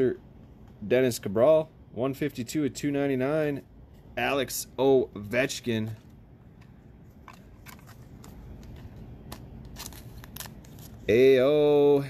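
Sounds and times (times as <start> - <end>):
cards and plastic sleeves clicking: 5.8 - 11.1.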